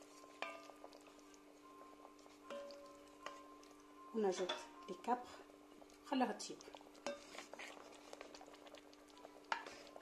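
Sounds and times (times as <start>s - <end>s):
low steady hum: 0.0s - 10.0s
sauce bubbling in a pot: 0.0s - 10.0s.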